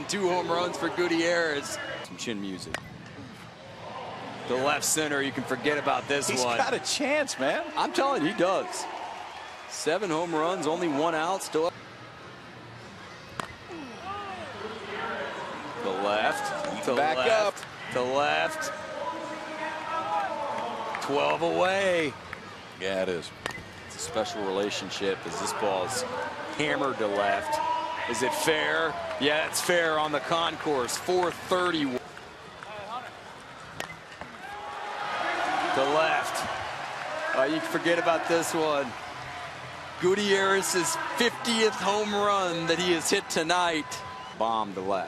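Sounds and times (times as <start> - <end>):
crowd cheering and shouting: 14.1 - 21.9, 24.0 - 31.8, 34.4 - 44.4.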